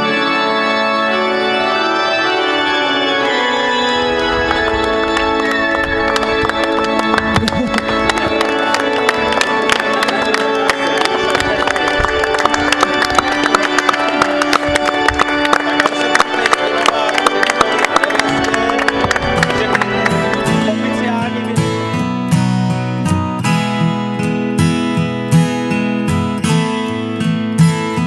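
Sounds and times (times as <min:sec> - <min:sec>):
organ playing chords: 0:00.0 - 0:28.0
people applauding: 0:04.0 - 0:21.8.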